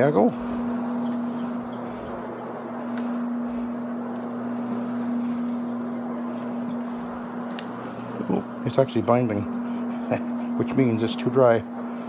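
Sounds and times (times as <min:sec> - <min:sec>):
carpet cleaning machine motor hum: 0:00.0 - 0:12.0.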